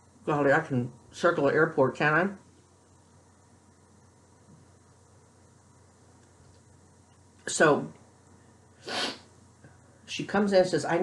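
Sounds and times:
person exhaling sharply: 8.8s - 9.3s.

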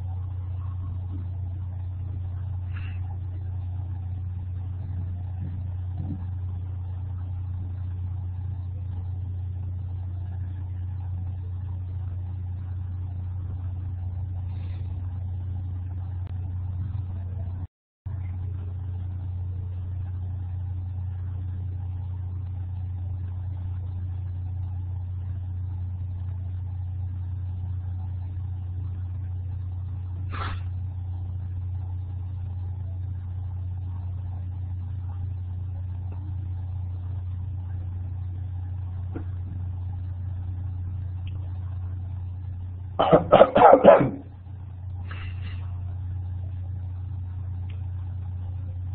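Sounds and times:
steady low hum: 0.0s - 48.9s.

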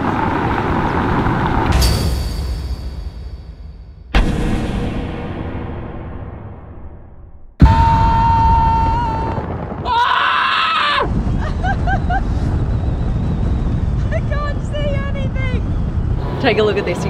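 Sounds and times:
wind rushing over microphone: 0.0s - 1.8s, 7.6s - 17.0s
car road noise: 0.0s - 3.1s, 11.1s - 17.0s
booming sound effect: 1.7s - 9.9s
man screaming: 7.6s - 11.1s
voices: 16.2s - 17.0s.

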